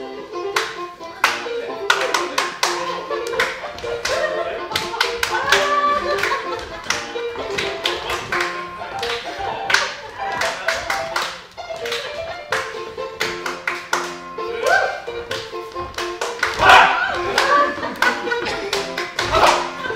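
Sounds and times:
lively dance music: 0:00.0 - 0:19.9
hand clapping: 0:00.5 - 0:14.2, 0:15.3 - 0:19.9.

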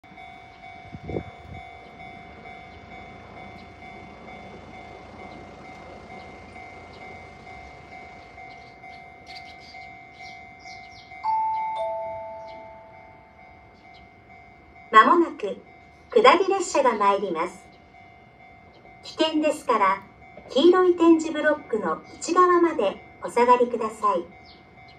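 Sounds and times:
crossing warning bell ringing: 0:00.0 - 0:24.9.

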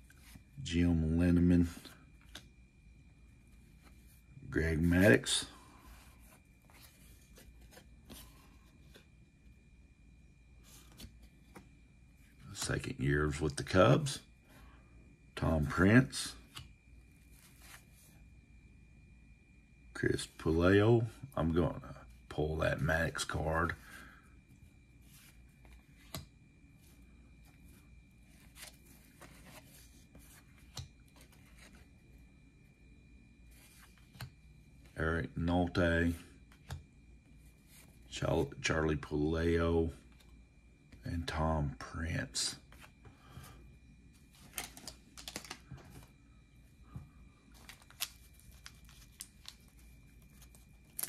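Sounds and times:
cards flicking and rustling: 0:44.4 - 0:46.1, 0:47.5 - 0:51.0.

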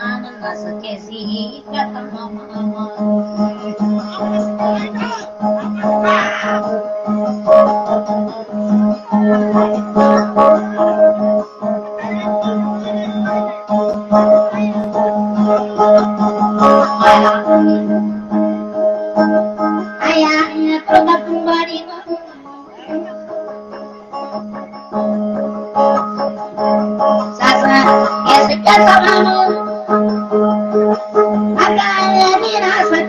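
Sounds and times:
plucked string instrument: 0:00.0 - 0:33.0.

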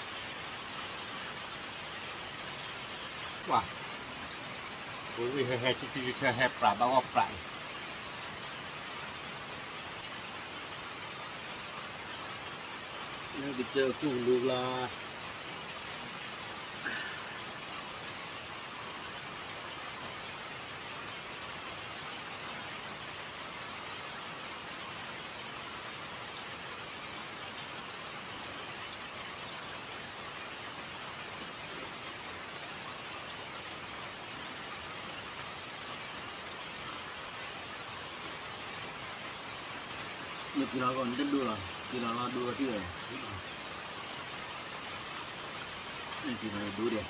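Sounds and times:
steady rain: 0:00.0 - 0:47.0.

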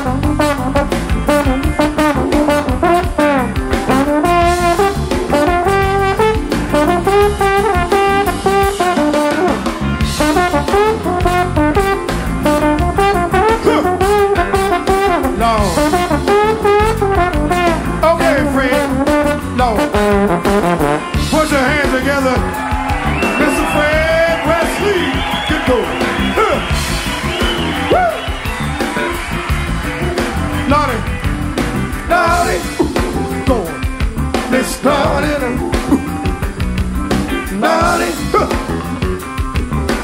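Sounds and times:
trombone solo melody: 0:00.0 - 0:21.4
funk band drums and bass: 0:00.0 - 0:40.0.

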